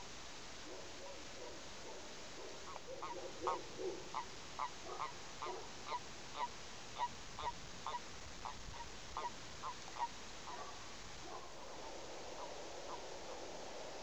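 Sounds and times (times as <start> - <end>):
softer lower toad calls: 2.5 - 10.8, 12.4 - 13.4
toads calling: 2.6 - 10.8.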